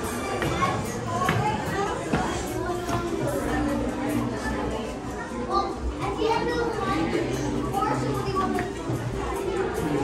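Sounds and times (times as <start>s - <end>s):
children's voices: 0.0s - 10.0s
people chattering: 0.0s - 10.0s.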